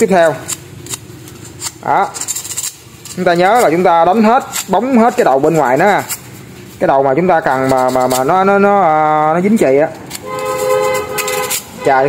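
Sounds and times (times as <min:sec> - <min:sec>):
two-tone vehicle horn honk: 0:10.2 - 0:12.0.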